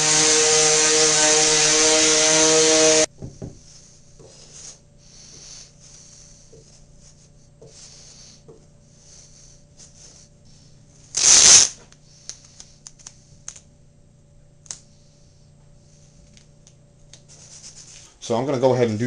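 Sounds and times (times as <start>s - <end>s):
loud rasping scrape: 0.0s - 3.1s.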